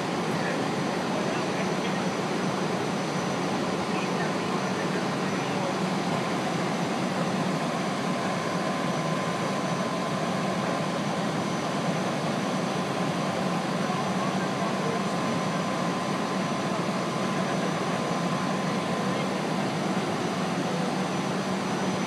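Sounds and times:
fire engine engine running: 0:00.0 - 0:22.0
voices: 0:00.0 - 0:22.0.

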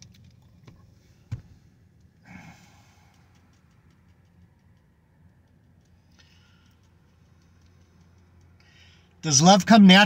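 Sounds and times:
faint ticks: 0:02.8 - 0:09.1.

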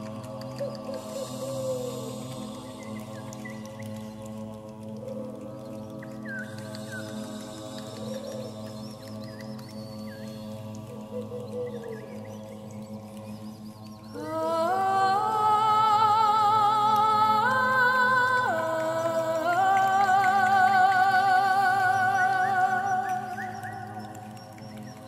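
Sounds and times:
choir humming a sustained chord: 0:00.0 - 0:25.0
voices singing: 0:00.0 - 0:25.0.

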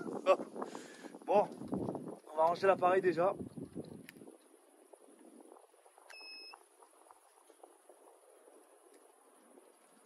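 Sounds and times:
faint scattered ticks: 0:03.5 - 0:10.0
electronic beep: 0:06.1 - 0:06.6.

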